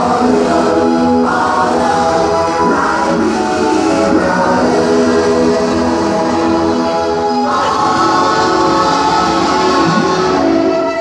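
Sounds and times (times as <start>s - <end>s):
group singing gospel song: 0.0s - 11.0s.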